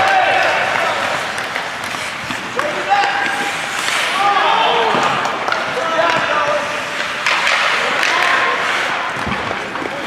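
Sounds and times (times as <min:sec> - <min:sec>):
spectators shouting: 0:00.0 - 0:01.3
hockey sticks and puck knocking: 0:00.0 - 0:10.0.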